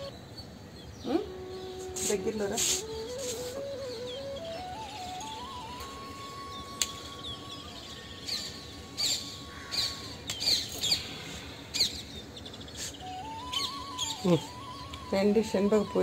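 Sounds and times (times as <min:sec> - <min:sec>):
faint background music: 0:00.0 - 0:16.0
small birds chirping: 0:00.0 - 0:16.0.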